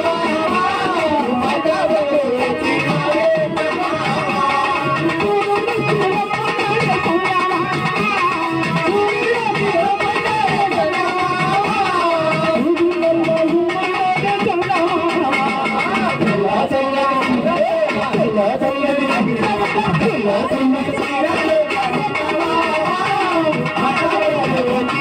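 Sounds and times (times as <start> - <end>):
live folk music: 0.0 - 25.0.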